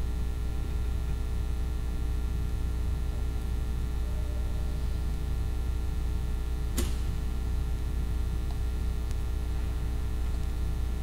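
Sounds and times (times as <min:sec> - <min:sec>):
low electrical hum: 0:00.0 - 0:11.0
sharp click: 0:06.7 - 0:07.1.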